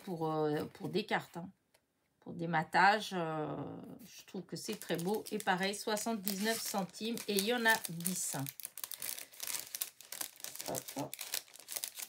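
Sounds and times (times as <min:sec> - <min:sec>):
plastic packaging crinkling: 0:04.6 - 0:12.0.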